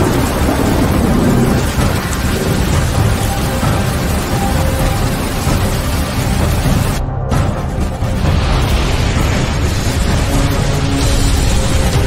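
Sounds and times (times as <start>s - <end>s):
rain: 0.0s - 12.0s
rolling thunder rumble: 0.0s - 12.0s.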